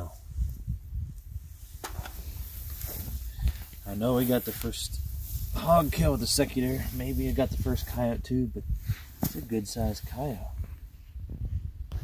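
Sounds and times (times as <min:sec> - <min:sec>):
rustling in grass: 0:00.1 - 0:08.0.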